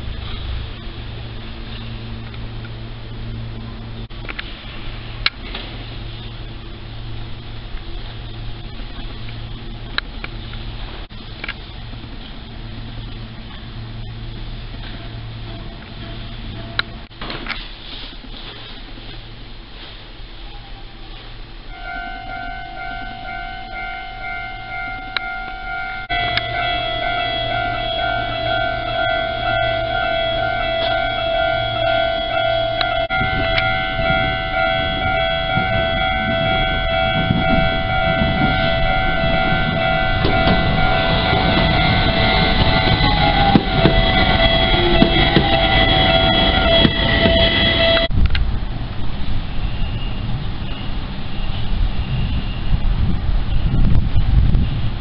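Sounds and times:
train rumbling past: 0.0 - 55.0
level-crossing warning bells ringing: 11.8 - 17.1, 20.5 - 48.1.

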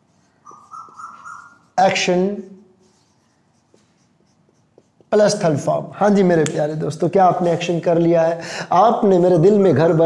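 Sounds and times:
marker pen on whiteboard: 0.0 - 8.0.

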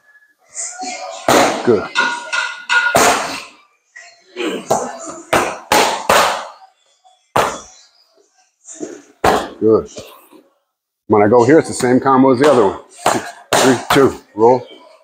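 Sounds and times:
boxing gloves hitting mitts: 12.4 - 14.1.

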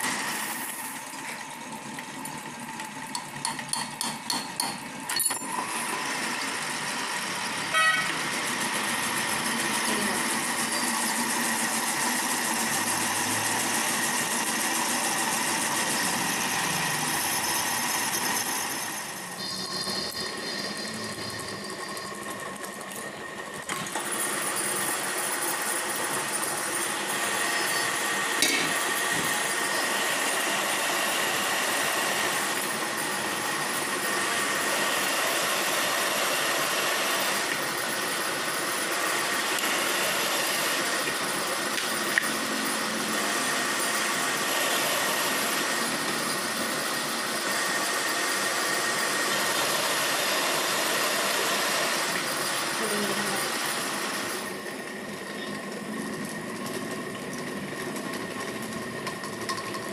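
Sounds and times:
metal lathe running with high whine: 0.0 - 59.9.

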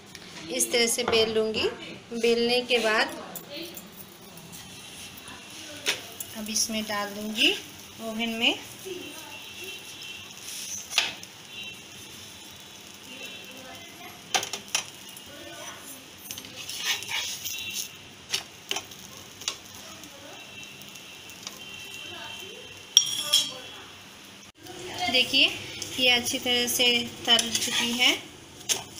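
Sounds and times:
faint sizzle: 0.0 - 28.9
metal spatula scraping a pan: 9.8 - 11.3, 15.8 - 18.0, 25.6 - 28.9.

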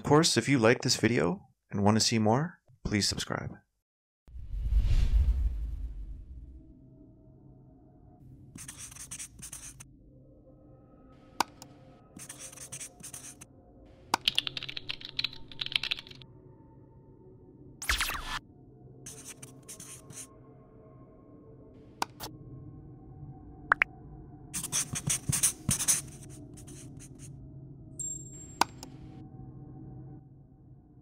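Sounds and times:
felt-tip marker scratching: 8.6 - 9.8, 12.2 - 13.4, 19.1 - 20.3, 24.6 - 27.3
computer keyboard typing: 14.2 - 16.2.

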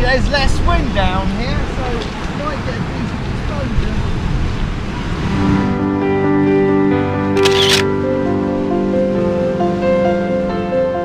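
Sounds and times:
wind: 0.0 - 11.0
camera shutter click: 7.4 - 7.9.

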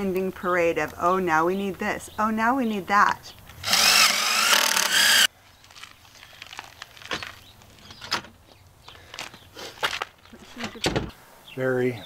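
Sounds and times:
cordless drill motor whine: 3.6 - 5.3.

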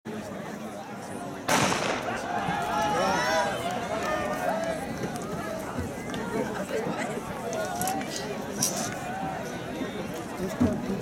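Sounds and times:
starter's pistol crack: 1.5 - 2.3
spectators shouting and cheering: 1.6 - 6.7.

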